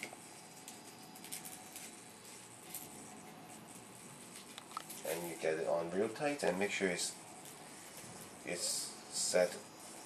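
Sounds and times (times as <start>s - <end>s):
velcro strap rustling: 0.0s - 5.4s.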